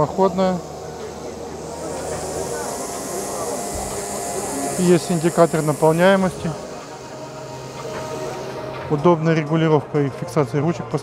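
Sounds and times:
steady hiss: 0.0 - 9.2.

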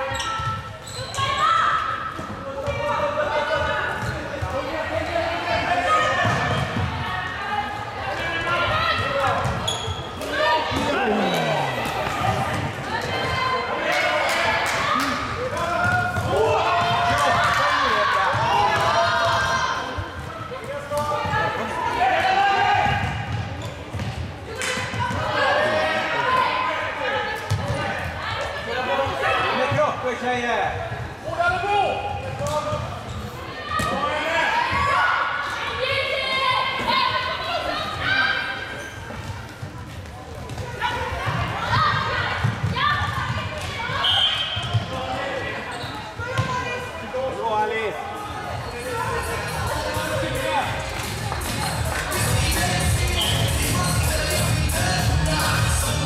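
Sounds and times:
players shouting: 10.2 - 20.0.

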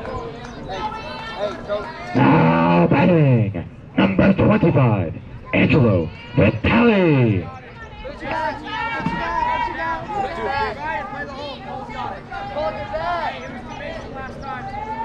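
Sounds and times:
chatter of voices: 0.0 - 15.0
people shouting: 5.5 - 15.0.

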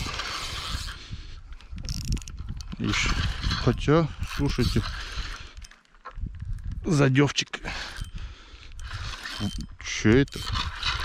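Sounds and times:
fishing reel clicking and whirring: 0.0 - 6.7, 7.6 - 11.0.

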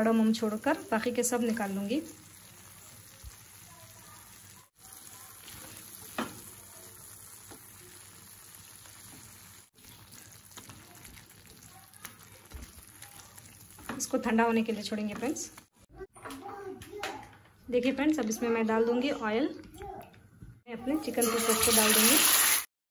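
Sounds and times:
sauce sizzling in a frying pan: 0.0 - 15.0, 21.0 - 22.7.

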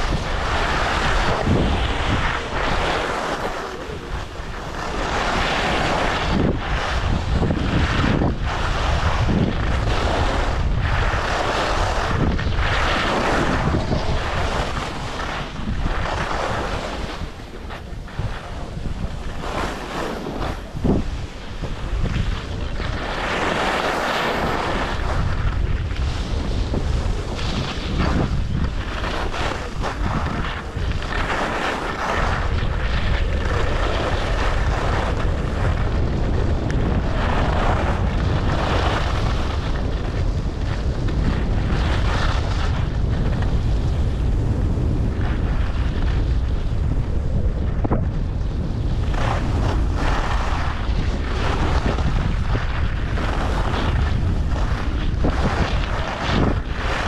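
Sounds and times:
skis scraping over snow: 0.0 - 57.0
wind buffeting microphone: 0.0 - 57.0.

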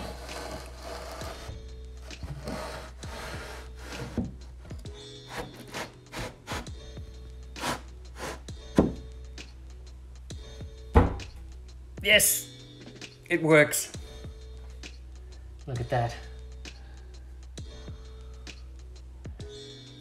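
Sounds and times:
plywood sliding against timber: 0.0 - 4.4, 5.3 - 6.7, 7.6 - 9.0
background music: 0.0 - 20.0.

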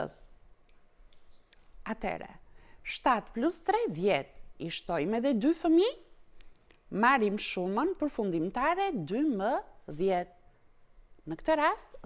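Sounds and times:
woman speaking: 0.0 - 0.4, 1.8 - 6.2, 6.9 - 10.4, 11.2 - 12.0.

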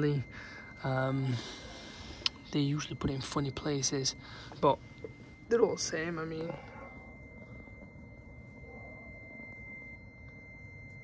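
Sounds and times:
faint high-pitched tone: 0.0 - 11.0.

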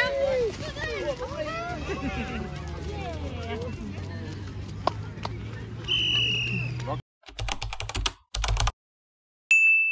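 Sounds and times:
keyboard typing clicks: 7.3 - 8.8.

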